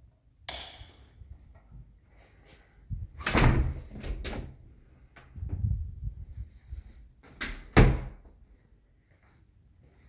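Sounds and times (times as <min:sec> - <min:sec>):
door thud: 0:07.4 - 0:08.2.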